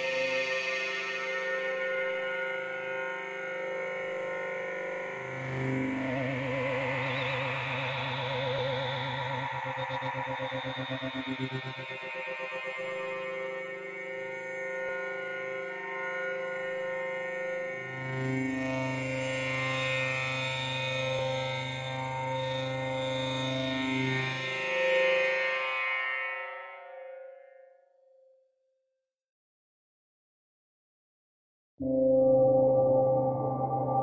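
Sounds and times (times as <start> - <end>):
pulsing synth chord: 31.8 - 34.0.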